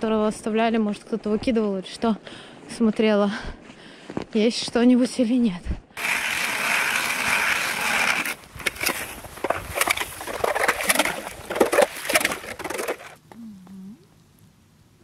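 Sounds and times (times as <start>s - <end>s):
ice auger drilling ice: 6.0s - 13.2s.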